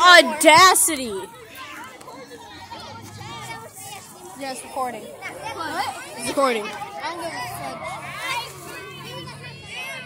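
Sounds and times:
children talking and calling out: 0.0 - 10.0.

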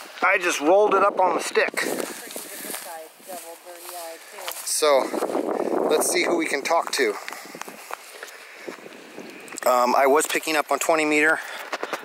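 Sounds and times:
grass rustling: 0.0 - 12.0.

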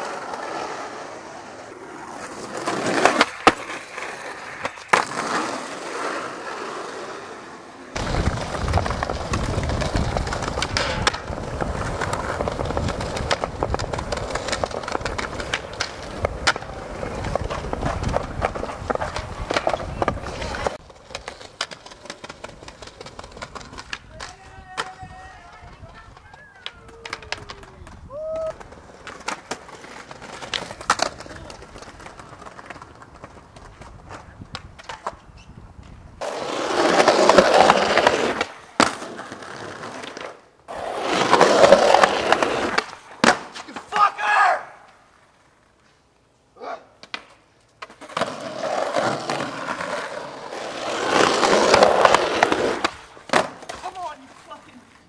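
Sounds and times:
skateboard clacks: 0.0 - 7.1, 7.9 - 44.1, 47.0 - 55.0
skateboard wheels rolling on tiles: 0.0 - 46.4, 47.0 - 55.0.

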